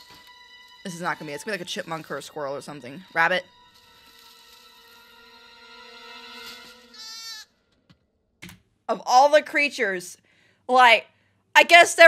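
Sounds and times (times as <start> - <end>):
goat bleat: 6.8 - 7.5.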